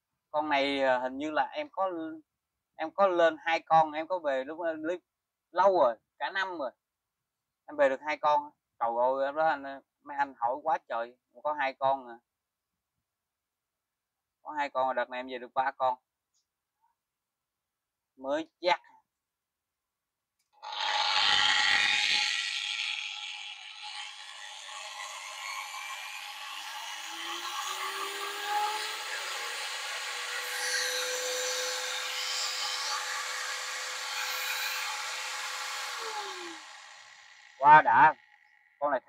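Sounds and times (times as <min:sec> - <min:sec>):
angle grinder whine: 0:20.6 - 0:38.8.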